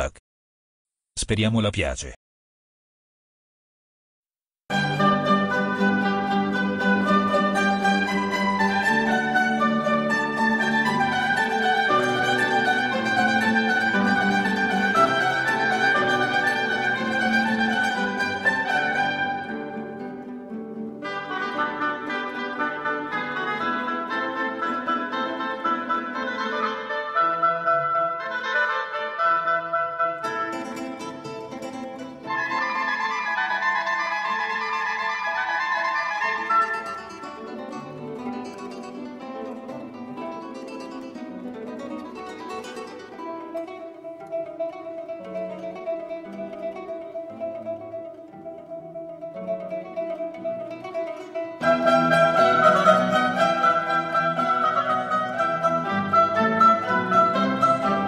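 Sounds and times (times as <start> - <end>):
baroque mandolin and string music: 4.7 - 58.0.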